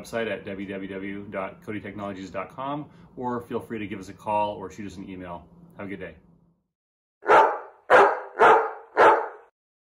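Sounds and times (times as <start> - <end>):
dog barking: 7.2 - 9.5.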